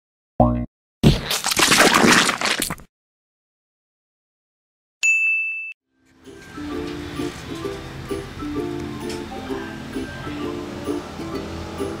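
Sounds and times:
bright ding: 5.0s - 5.8s.

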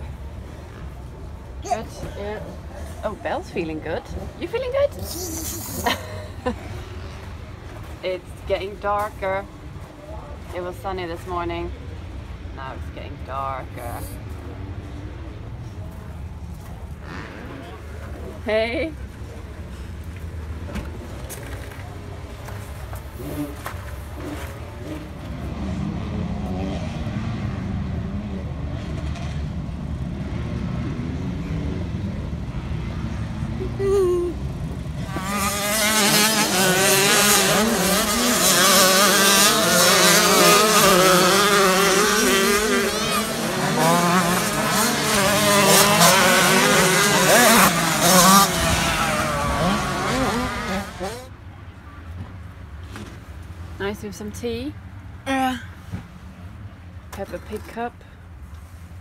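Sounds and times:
motocross bikes revving: 0.0s - 9.8s, 16.9s - 18.9s, 20.9s - 51.3s
steady engine drone: 24.3s - 51.4s.

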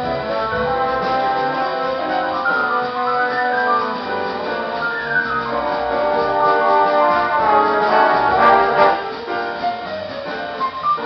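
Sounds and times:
big band brass chords: 0.0s - 10.6s
trombone sliding down: 0.0s - 11.0s.

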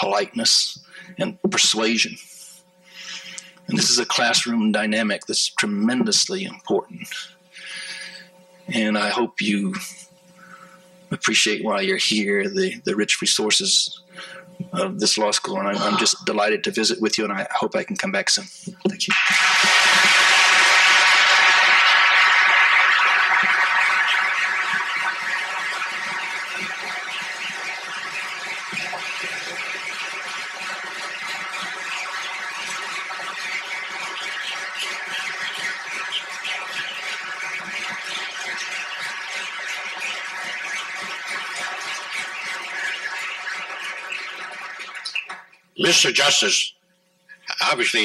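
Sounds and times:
audience applause: 19.1s - 45.2s.

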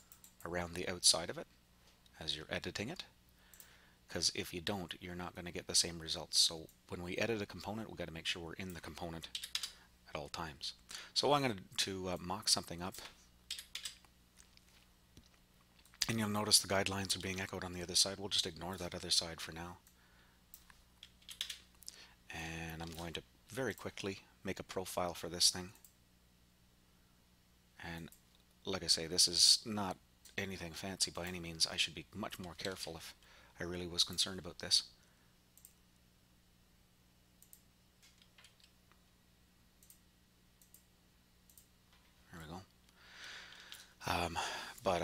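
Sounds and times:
computer mouse clicks: 0.0s - 0.4s, 9.3s - 9.8s, 19.8s - 21.9s, 35.6s - 35.8s, 37.4s - 38.8s, 39.8s - 40.0s, 40.6s - 40.9s, 41.5s - 41.7s
low electrical hum: 0.0s - 45.0s
keyboard and mouse clicks: 8.6s - 9.8s, 13.5s - 14.6s, 20.5s - 21.7s.

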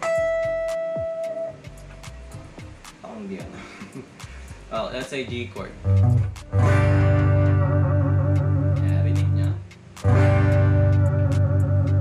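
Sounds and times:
electric guitar chord with vibrato: 6.1s - 8.8s, 10.0s - 12.0s.

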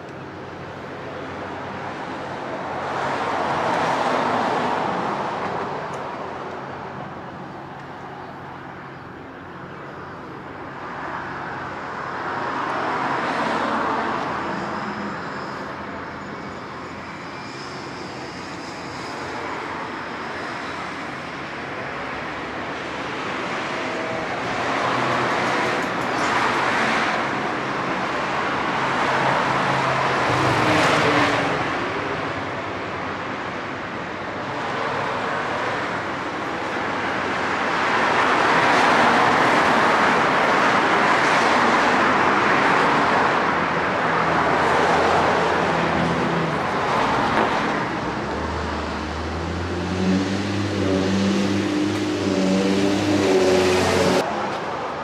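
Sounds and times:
cars passing: 0.0s - 55.0s
large vehicle engine hum: 0.0s - 55.0s.

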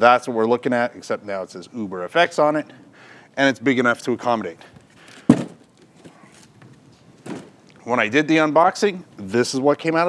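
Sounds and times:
faint handling noises: 4.6s - 7.9s
cardboard box thud: 5.3s - 5.6s.

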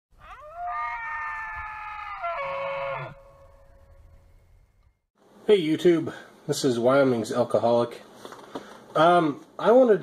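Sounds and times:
elk bugling: 0.2s - 4.1s.

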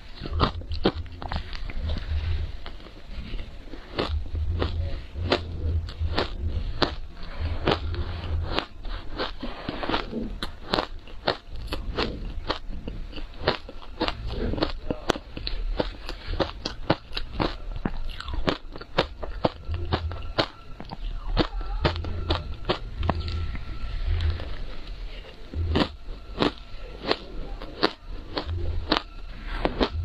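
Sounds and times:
crunching and chewing ice: 0.0s - 30.0s.

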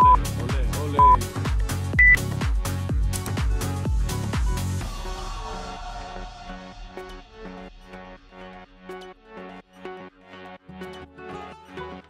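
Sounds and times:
timer beeps: 0.0s - 0.3s, 1.0s - 1.2s, 2.0s - 2.2s.

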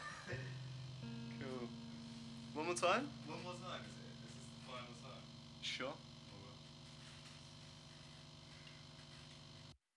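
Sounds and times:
low electrical hum: 0.0s - 9.8s.

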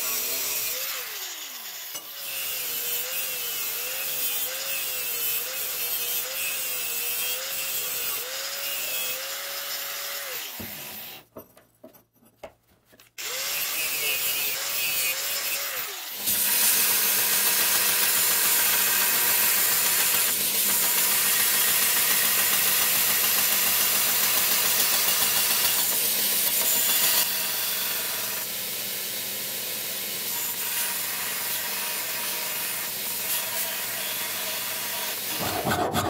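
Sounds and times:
belt grinder grinding metal: 0.0s - 11.2s, 13.2s - 36.0s.

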